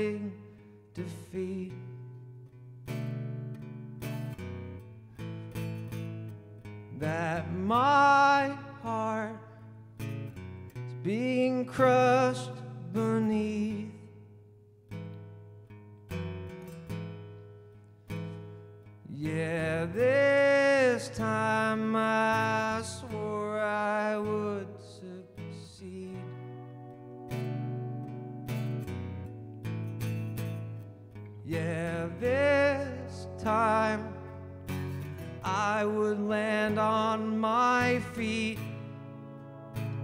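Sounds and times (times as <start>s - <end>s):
man singing: 0.0s - 2.0s, 6.9s - 9.7s, 10.9s - 14.2s, 19.1s - 26.8s, 31.4s - 39.2s
acoustic guitar strummed and plucked: 0.0s - 40.0s.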